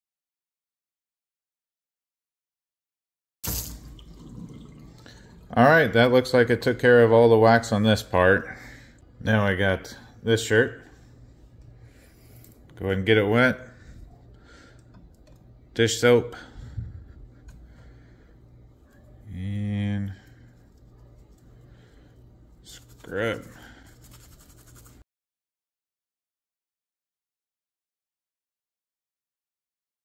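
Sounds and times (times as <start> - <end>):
rubbing wet shirt: 22.6 - 25.0.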